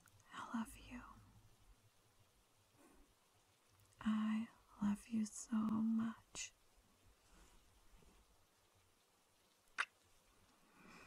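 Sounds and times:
mouth click: 0:09.8 - 0:10.0.

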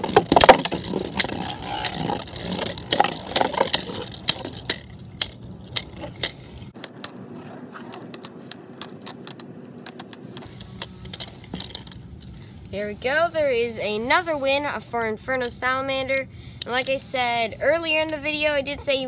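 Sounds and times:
spinning tops whirring and scraping: 0:00.0 - 0:12.7.

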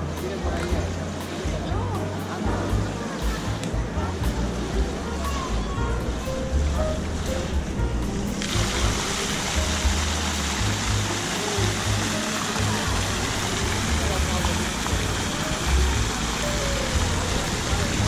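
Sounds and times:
background music with deep bass: 0:00.0 - 0:18.0
crowd chatter: 0:00.0 - 0:18.0
fountain water splashing: 0:00.0 - 0:18.0.

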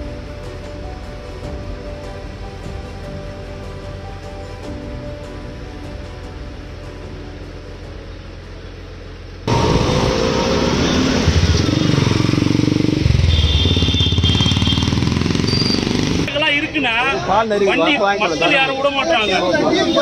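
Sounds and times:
engines revving in passing traffic: 0:08.4 - 0:16.4
vehicle horn: 0:13.1 - 0:17.0, 0:17.7 - 0:20.0.

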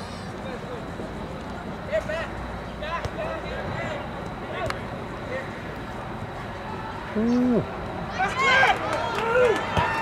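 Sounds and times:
distant voices calling out: 0:00.0 - 0:09.7
outdoor background noise: 0:00.0 - 0:10.0.

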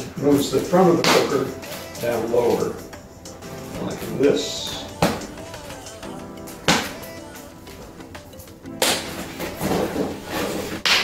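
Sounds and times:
background music: 0:00.0 - 0:11.0
reflector sheet rustling: 0:08.9 - 0:10.9.

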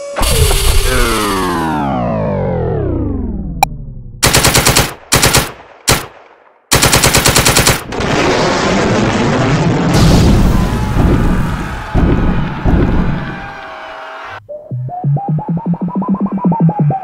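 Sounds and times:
falling whine: 0:00.0 - 0:04.2
machine-gun fire: 0:04.2 - 0:08.6.

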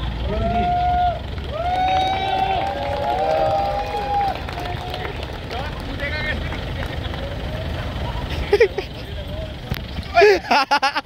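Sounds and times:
diesel engine idling: 0:00.0 - 0:11.0
people talking: 0:04.6 - 0:09.9
person laughing: 0:08.3 - 0:09.0, 0:10.1 - 0:11.0.

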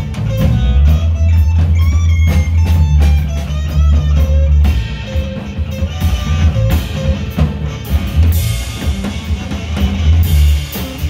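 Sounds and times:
drum kit with cymbal hits: 0:00.0 - 0:11.0
electric bass: 0:00.0 - 0:11.0
electric guitar: 0:00.0 - 0:11.0.

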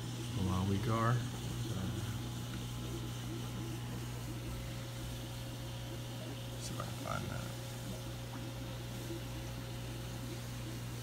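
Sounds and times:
aquarium pumps and filters droning: 0:00.0 - 0:11.0.

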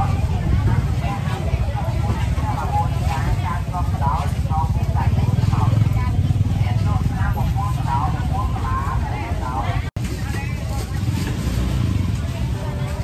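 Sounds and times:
people talking: 0:00.0 - 0:13.0.

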